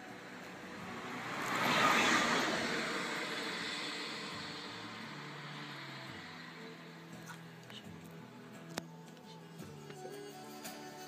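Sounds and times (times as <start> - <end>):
vehicle driving past: 0.0 - 8.7.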